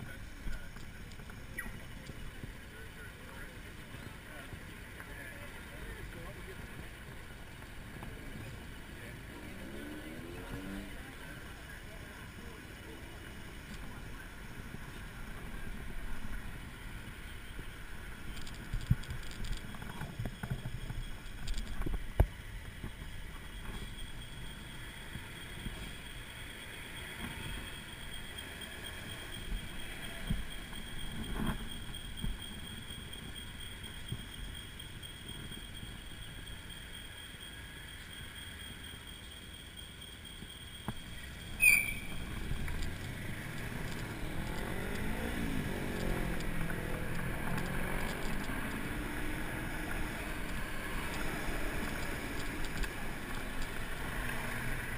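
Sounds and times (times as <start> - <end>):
faint high whine: 0.0 - 54.9
pedestrians' voices: 0.0 - 54.9
street traffic: 0.0 - 54.9.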